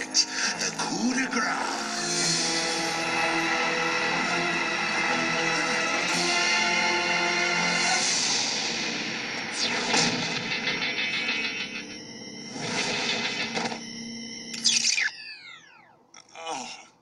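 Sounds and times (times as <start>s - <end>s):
background music: 0.0s - 14.6s.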